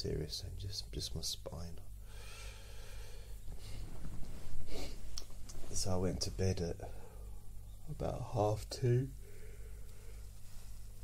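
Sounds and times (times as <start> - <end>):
low electrical hum: 0.0 - 11.0
man breathing in: 2.0 - 3.9, 9.2 - 10.8.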